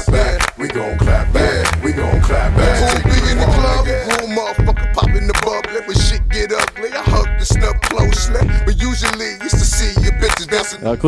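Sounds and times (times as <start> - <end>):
rapping over a bass beat: 0.0 - 11.0.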